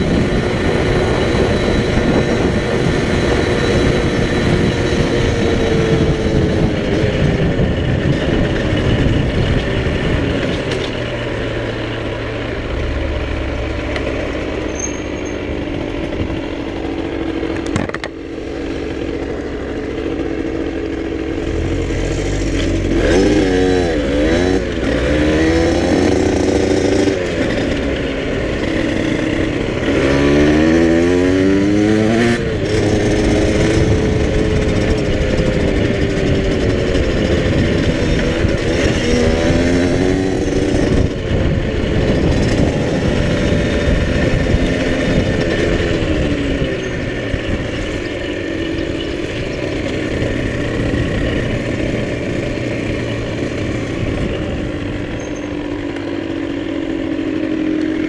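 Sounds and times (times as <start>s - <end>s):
motorcycle engine: 0.0s - 58.0s.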